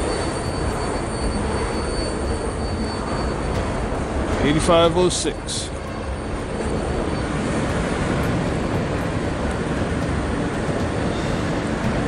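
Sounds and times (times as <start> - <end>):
subway train rumble and hiss: 0.0 - 12.0.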